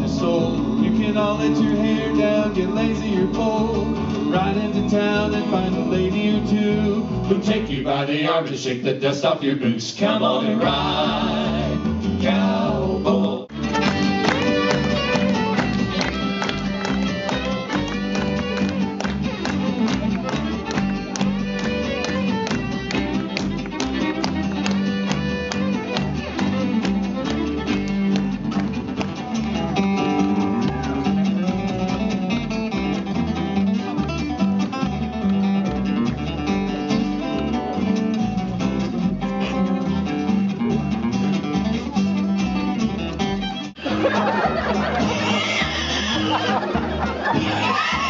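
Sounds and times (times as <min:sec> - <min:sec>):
strummed acoustic guitar: 0:00.0 - 0:08.0, 0:10.4 - 0:48.0
upright bass: 0:00.0 - 0:09.1, 0:09.8 - 0:48.0
fiddle playing lead: 0:13.5 - 0:48.0.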